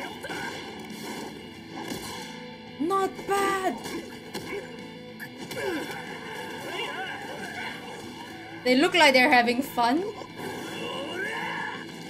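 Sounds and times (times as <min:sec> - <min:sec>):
soundtrack background sound: 0:00.0 - 0:12.0.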